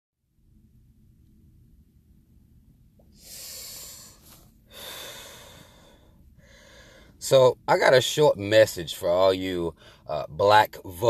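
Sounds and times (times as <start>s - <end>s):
person breathing: 3.0s - 7.2s, 9.7s - 10.1s.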